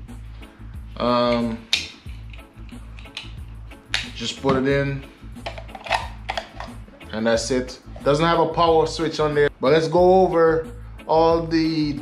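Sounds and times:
low background music: 0.0s - 12.0s.

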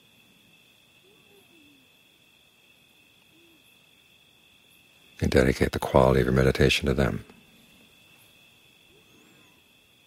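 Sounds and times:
night insects trilling: 0.0s - 10.0s
faint low hoot-like call: 1.0s - 2.0s, 3.2s - 3.8s, 8.9s - 9.7s.

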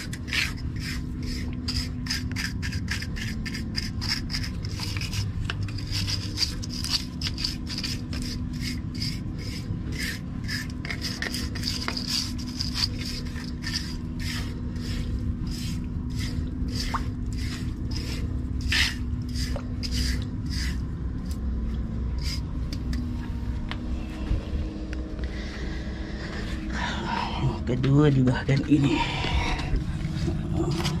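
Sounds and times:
metal scraper scraping concrete: 0.0s - 21.4s, 22.1s - 22.8s, 28.2s - 31.0s
steady low hum: 0.0s - 31.0s.

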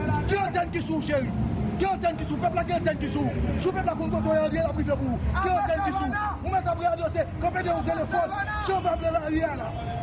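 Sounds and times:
man talking loudly: 0.0s - 9.6s
low rumble of street traffic: 0.0s - 10.0s.

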